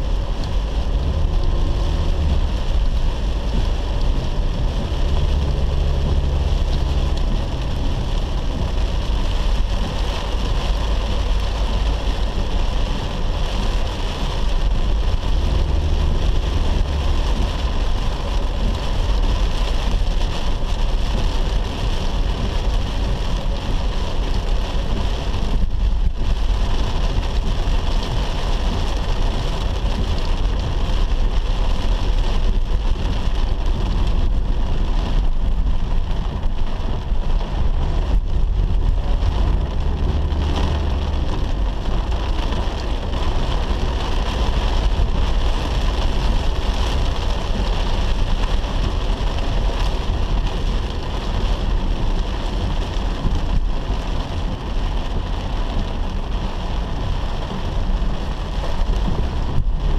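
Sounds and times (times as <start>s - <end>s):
low road rumble: 0.0s - 59.9s
rain on car roof: 0.0s - 59.9s
tyres on flooded road: 0.0s - 59.9s.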